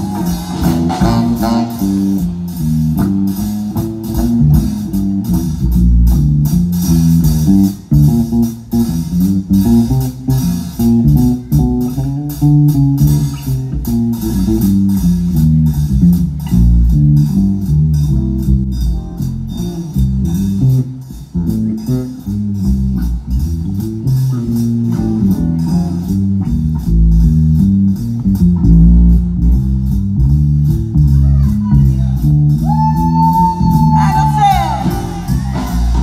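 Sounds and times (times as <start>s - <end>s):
bass guitar: 0.0s - 36.0s
drum kit: 0.0s - 36.0s
electric guitars: 0.0s - 36.0s
lead guitar bending notes: 0.0s - 36.0s.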